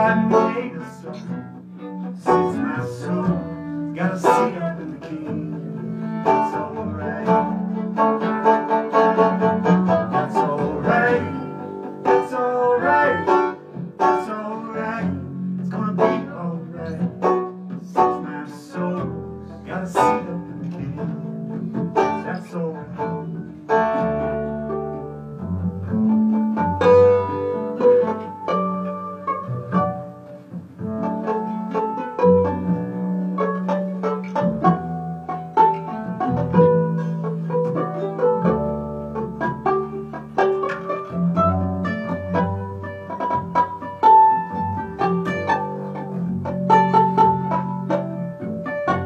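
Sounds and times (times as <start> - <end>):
fiddle bowing: 0.0 - 49.0
picked banjo: 0.0 - 49.0
plucked upright bass: 0.0 - 49.0
strummed acoustic guitar: 0.0 - 49.0.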